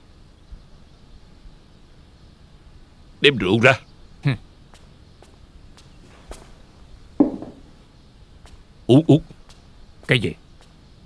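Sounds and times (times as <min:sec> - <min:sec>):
soft footsteps on floor: 0:04.8 - 0:07.7.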